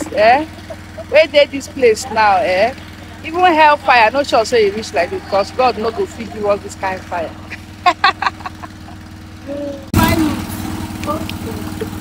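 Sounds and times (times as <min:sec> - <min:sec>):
woman laughing: 0:00.0 - 0:03.7, 0:07.4 - 0:09.8
small engine running: 0:00.0 - 0:12.0.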